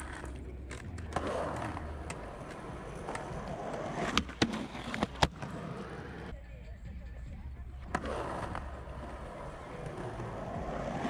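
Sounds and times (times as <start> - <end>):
skateboard wheels rolling on concrete: 0.0 - 6.4, 7.3 - 11.0.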